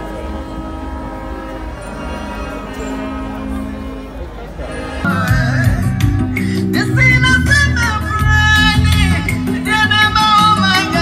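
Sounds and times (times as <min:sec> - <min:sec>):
sustained chord over speakers: 0:00.0 - 0:11.0.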